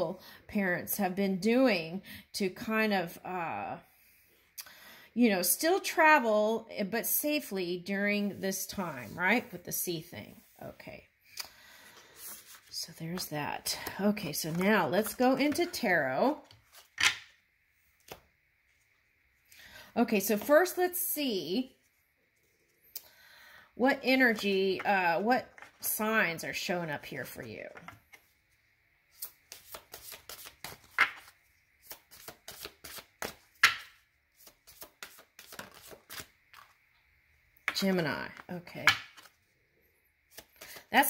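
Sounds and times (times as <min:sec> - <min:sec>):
cards being shuffled: 0:12.1 - 0:15.8, 0:16.4 - 0:17.3, 0:29.1 - 0:36.8, 0:37.7 - 0:39.4, 0:40.3 - 0:40.9.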